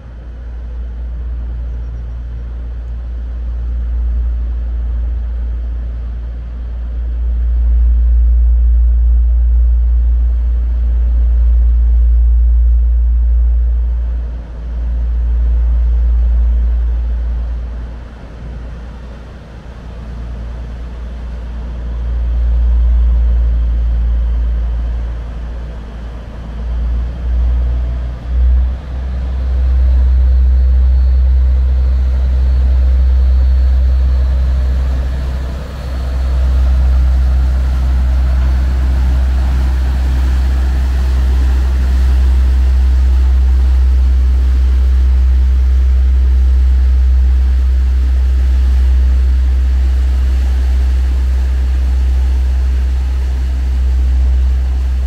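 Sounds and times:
diesel engine drone: 0:00.0 - 0:55.0
propeller wash churning water: 0:32.8 - 0:45.6.

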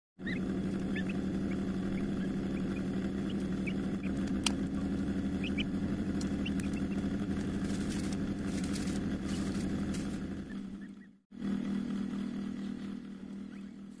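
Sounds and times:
chick peeping: 0:00.2 - 0:07.0
low mechanical hum: 0:00.2 - 0:14.0.

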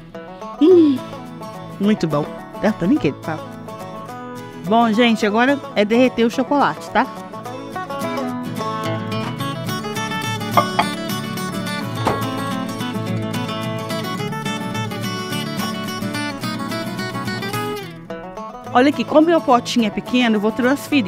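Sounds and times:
instrumental music with plucked strings: 0:00.0 - 0:21.0.

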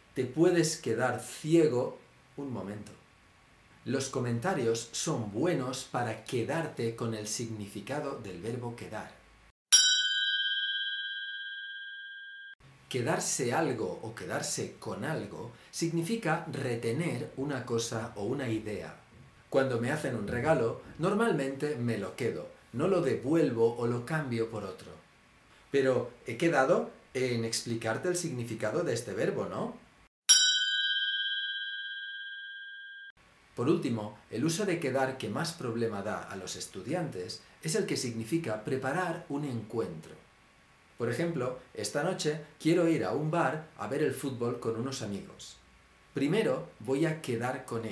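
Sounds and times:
bell-like ding: 0:09.7 - 0:12.6, 0:30.3 - 0:33.1.

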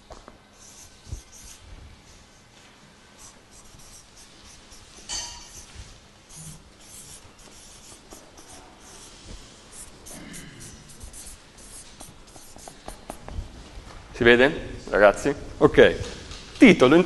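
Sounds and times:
pen scratching on board: 0:00.6 - 0:01.6, 0:03.2 - 0:13.2.

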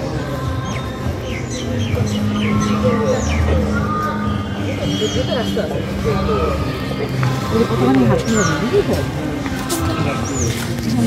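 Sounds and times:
people talking overlapping: 0:00.0 - 0:11.0
steady music-like tones: 0:00.0 - 0:11.0.

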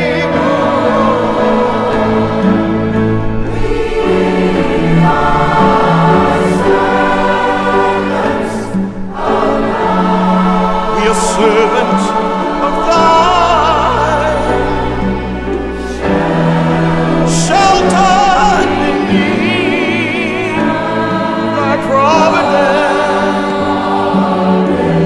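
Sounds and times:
choir singing: 0:00.0 - 0:25.0
string orchestra: 0:00.0 - 0:25.0.

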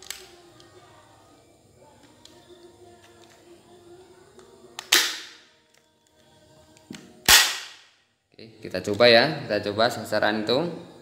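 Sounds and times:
toy pistol action crack: 0:00.0 - 0:00.7, 0:04.8 - 0:05.8, 0:06.8 - 0:08.0.

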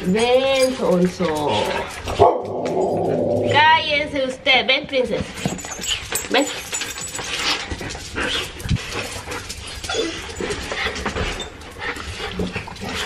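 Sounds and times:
dogs whining and yipping: 0:05.3 - 0:13.0.

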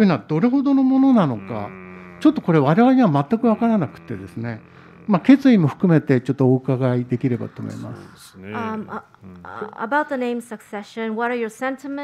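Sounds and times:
person talking: 0:01.0 - 0:09.9.

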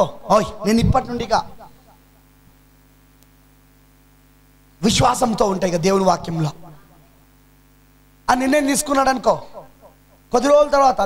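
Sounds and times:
man speaking through microphone: 0:00.0 - 0:01.7, 0:04.8 - 0:06.8, 0:08.3 - 0:09.7, 0:10.3 - 0:11.0
electrical mains hum: 0:00.0 - 0:11.0.

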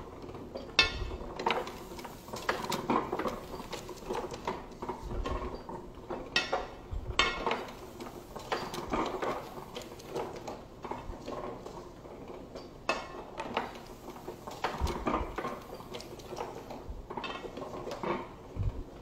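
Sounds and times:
printing press clattering: 0:00.0 - 0:19.0.

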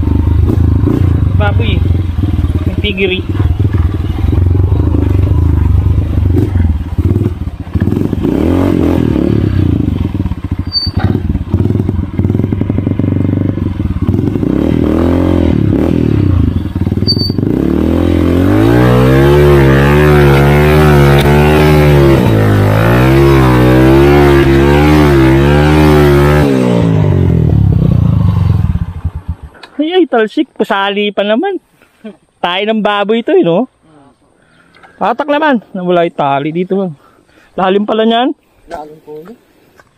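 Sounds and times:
motorcycle engine revving: 0:00.0 - 0:29.7
motorcycle rattling over bumps: 0:00.0 - 0:29.7.

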